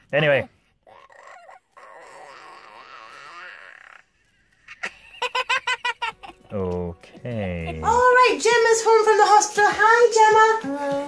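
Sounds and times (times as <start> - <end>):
girl laughing: 4.7 - 6.5, 7.1 - 8.1.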